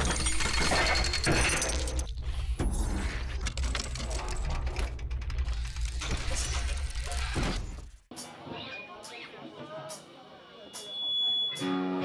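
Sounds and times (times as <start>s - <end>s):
glitchy mechanical clicking: 3.2s - 8.0s.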